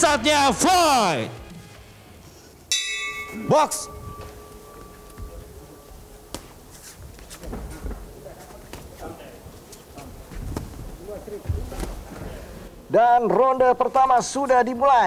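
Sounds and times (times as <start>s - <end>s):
boxing ring bell: 2.7s - 6.7s
feet on ring canvas: 4.1s - 12.6s
boxing gloves smacking: 6.3s - 7.6s.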